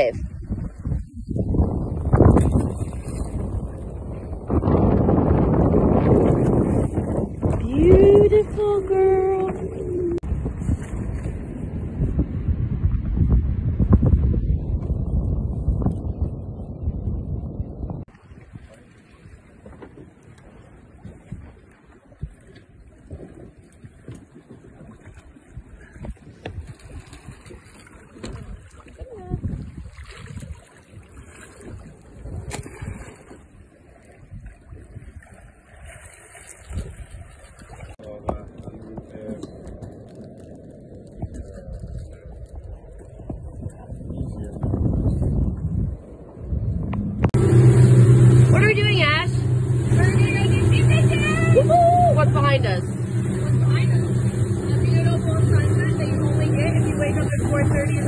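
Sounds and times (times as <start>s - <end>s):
faint water sounds: 0.0s - 58.0s
wind buffeting microphone: 0.0s - 58.0s
voices: 7.6s - 10.2s, 48.4s - 58.0s.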